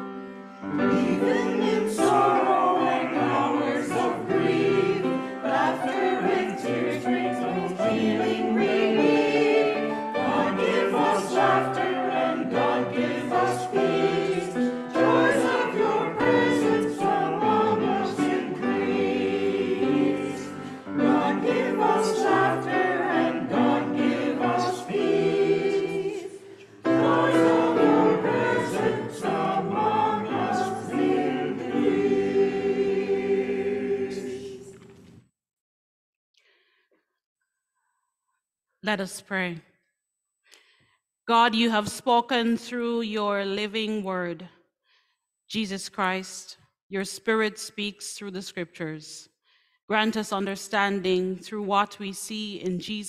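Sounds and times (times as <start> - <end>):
choir singing a hymn: 0.0 - 35.0.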